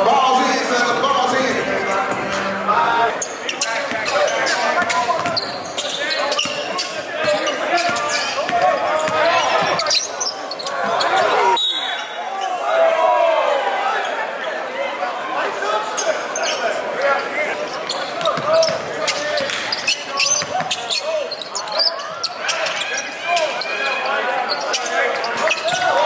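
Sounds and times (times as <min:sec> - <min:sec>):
voices of players and spectators: 0:00.0 - 0:26.0.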